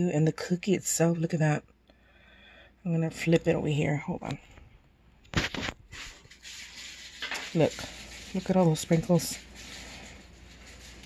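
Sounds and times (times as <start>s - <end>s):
woman speaking: 0.0s - 1.6s, 2.8s - 4.5s, 7.4s - 9.5s
cookie rustling in cardboard box: 5.3s - 11.0s.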